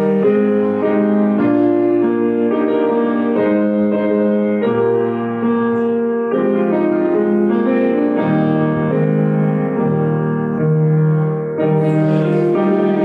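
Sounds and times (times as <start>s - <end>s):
piano playing slow hymn chords: 0.0s - 13.0s.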